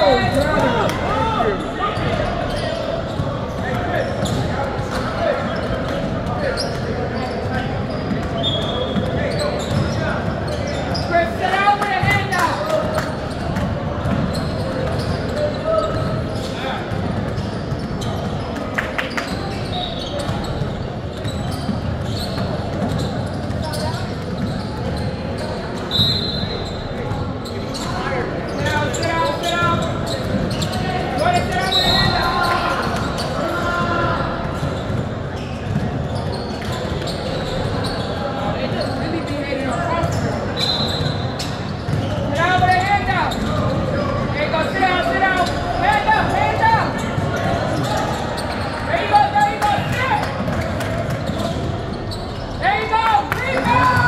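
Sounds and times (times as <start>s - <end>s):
basketballs bouncing on hardwood: 34.4s - 36.1s.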